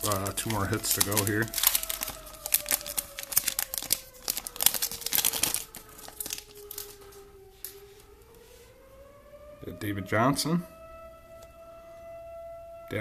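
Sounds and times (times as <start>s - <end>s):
foil pack tearing and crinkling: 0.0s - 7.1s.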